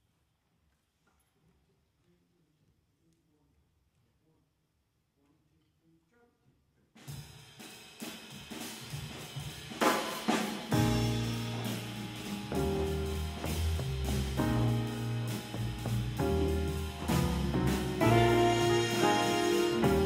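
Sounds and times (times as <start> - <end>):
drum kit playing: 7.0 - 20.0
bass and horns playing: 10.7 - 20.0.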